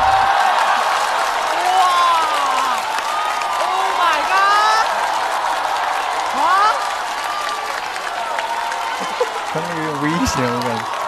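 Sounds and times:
audience clapping: 0.0s - 11.0s
audience laughing: 8.9s - 10.8s.

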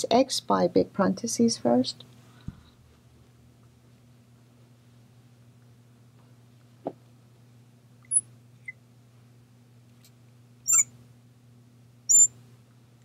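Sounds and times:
marker squeaking on glass: 8.0s - 8.8s, 10.7s - 10.9s, 12.1s - 12.3s.

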